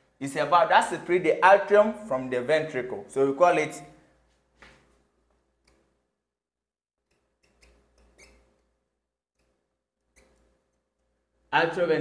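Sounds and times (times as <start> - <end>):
marker squeaking on whiteboard: 7.2 - 8.7.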